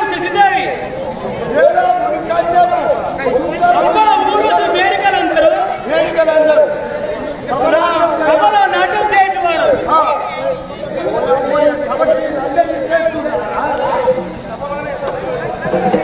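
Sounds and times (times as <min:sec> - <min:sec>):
voices chattering: 0:00.0 - 0:16.0.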